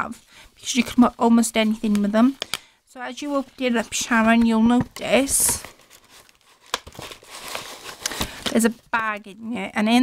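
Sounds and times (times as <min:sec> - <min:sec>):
plastic bag rustling: 0:03.2 - 0:08.8
paper envelope opening: 0:05.1 - 0:08.6.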